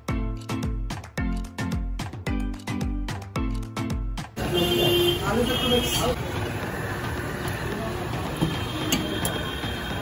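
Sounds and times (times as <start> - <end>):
traffic rumble: 4.4 - 10.0.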